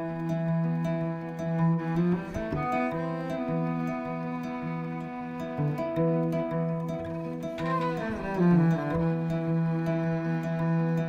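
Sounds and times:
bowed cello: 0:00.0 - 0:11.0
plucked kora strings: 0:00.0 - 0:11.0.

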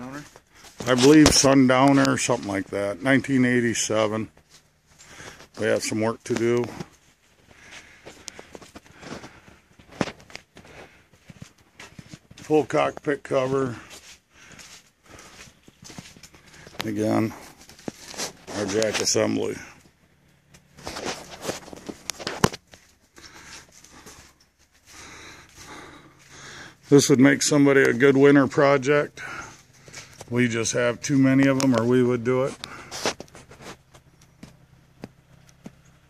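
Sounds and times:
light scuffs and clicks: 0:04.2 - 0:28.2, 0:29.1 - 0:36.0
footsteps on concrete: 0:04.2 - 0:35.9.

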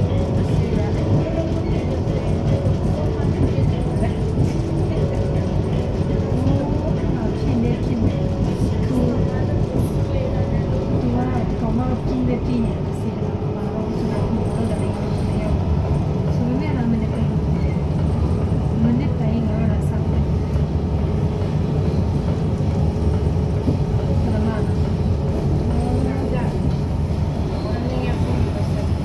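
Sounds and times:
train rumbling on track: 0:00.0 - 0:29.0.

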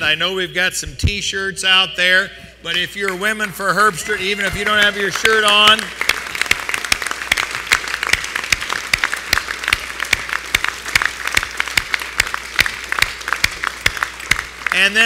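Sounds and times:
crowd applauding: 0:03.9 - 0:15.0
sharp individual hand claps: 0:04.5 - 0:14.9.

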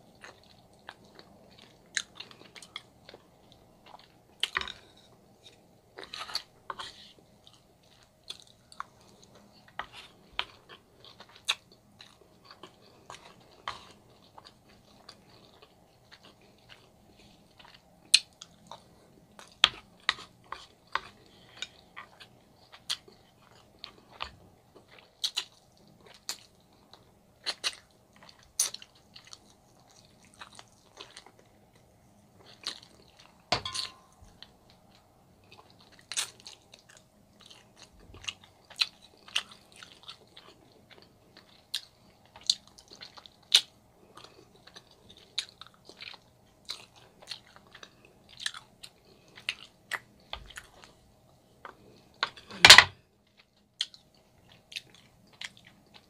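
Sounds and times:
person chewing meat: 0:00.0 - 0:52.6, 0:53.2 - 0:56.0.

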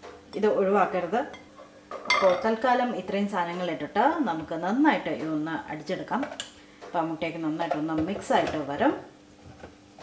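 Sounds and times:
woman talking: 0:00.3 - 0:01.4, 0:02.1 - 0:09.1.

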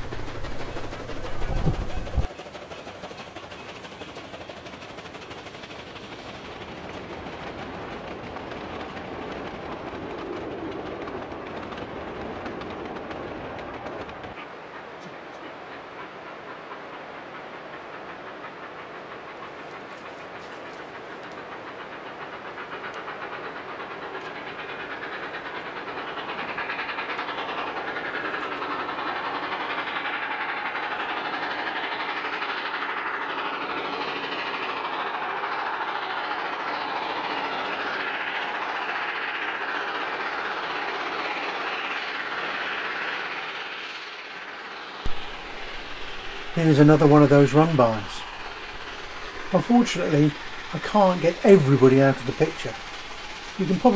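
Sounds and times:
steam train running by: 0:00.0 - 0:53.9.

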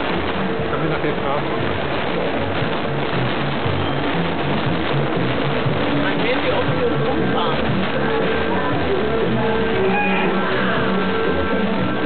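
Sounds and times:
fairground din: 0:00.0 - 0:12.0
fairground music with pulsing bass: 0:00.0 - 0:12.0.

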